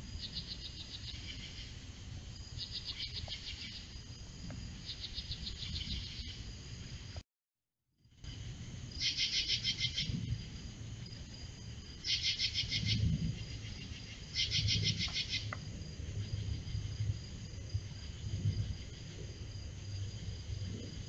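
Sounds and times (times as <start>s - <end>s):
high insect trill: 0.0s - 7.2s, 8.0s - 21.0s
insects pulsed chirping: 0.0s - 7.2s, 8.0s - 21.0s.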